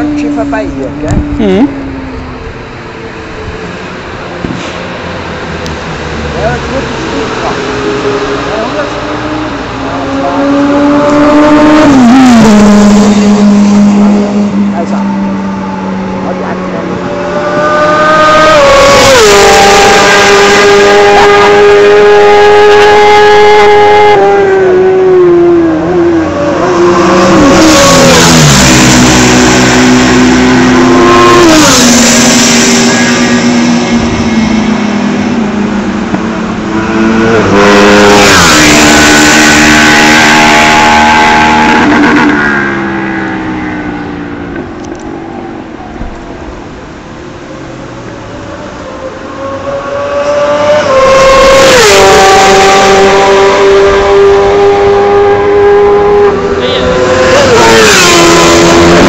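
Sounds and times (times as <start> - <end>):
motorcycles passing at racing speed: 3.6 - 59.0.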